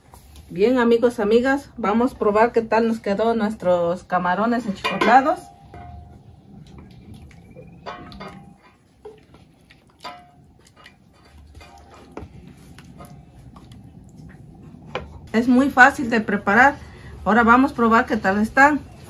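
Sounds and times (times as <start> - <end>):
dishes and utensils clinking: 4.7 - 12.3.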